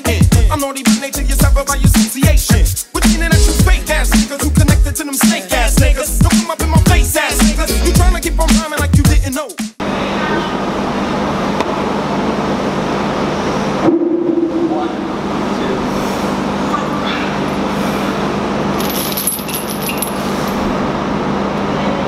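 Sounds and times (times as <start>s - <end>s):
low hum: 13.5s - 15.9s
chains clinking and rattling: 18.8s - 20.7s.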